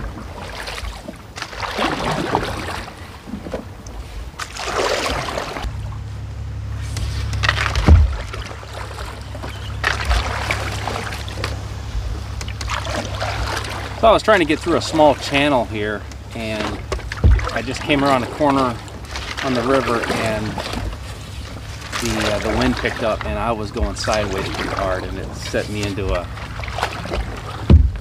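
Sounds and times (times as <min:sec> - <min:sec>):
low rumble: 0:00.0 - 0:28.0
paddle splashing in water: 0:00.0 - 0:28.0.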